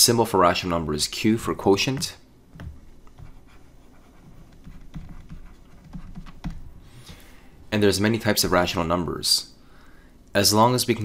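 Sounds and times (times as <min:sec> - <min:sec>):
stylus tapping on tablet: 0:02.0 - 0:03.6, 0:04.3 - 0:06.7.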